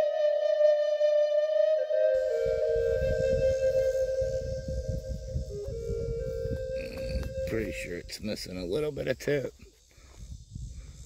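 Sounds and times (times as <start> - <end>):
flute melody: 0.0 - 8.1
wind rumble on microphone: 2.2 - 9.0, 9.6 - 11.0.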